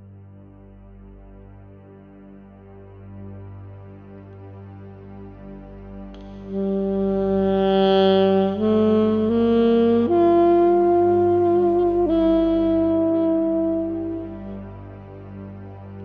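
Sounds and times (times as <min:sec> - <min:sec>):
steady low drone: 0:00.0 - 0:16.0
saxophone-like melody: 0:06.2 - 0:16.0.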